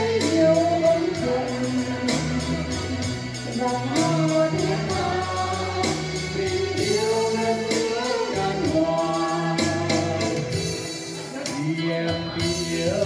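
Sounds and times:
backing track with bass and beat: 0.0s - 13.0s
man and woman singing a duet: 0.0s - 13.0s.

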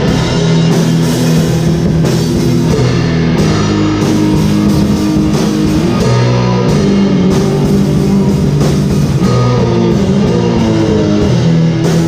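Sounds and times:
distorted electric guitars: 0.0s - 12.0s
drum kit with cymbals: 0.0s - 12.0s.

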